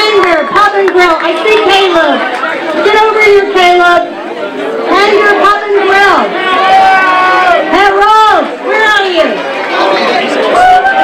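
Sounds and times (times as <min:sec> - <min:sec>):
woman talking into microphone: 0:00.0 - 0:02.2, 0:04.9 - 0:06.3
crowd chatter: 0:00.0 - 0:11.0.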